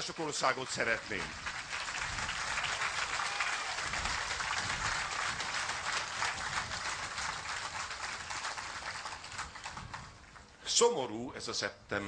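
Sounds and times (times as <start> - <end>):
audience applauding: 0.0 - 10.5.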